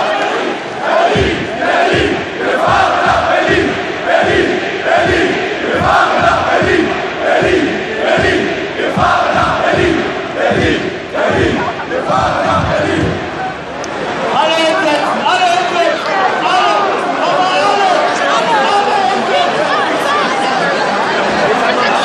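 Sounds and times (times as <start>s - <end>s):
crowd chanting in unison: 0.0s - 22.0s.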